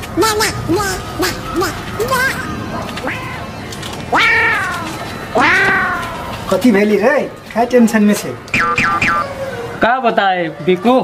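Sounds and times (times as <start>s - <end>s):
cat meowing: 3.0s - 3.5s, 4.1s - 6.3s.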